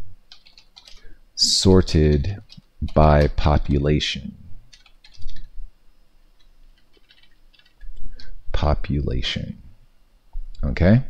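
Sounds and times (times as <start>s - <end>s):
faint keyboard keystrokes: 0.3s - 1.1s, 4.7s - 5.5s.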